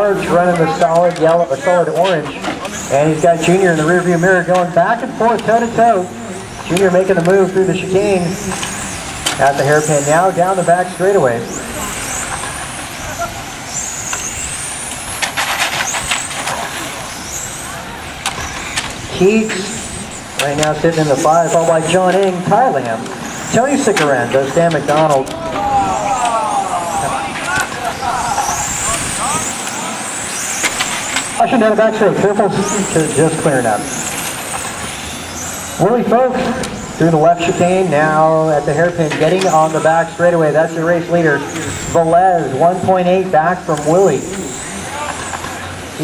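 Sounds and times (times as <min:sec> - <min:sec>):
rc car motors whining: 0:00.0 - 0:46.0.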